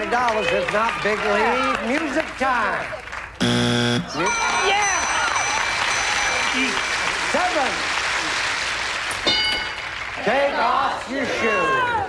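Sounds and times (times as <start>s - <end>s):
audience applauding: 0.0s - 3.4s, 5.1s - 11.8s
bell-like ding: 4.3s - 7.4s, 9.3s - 9.8s.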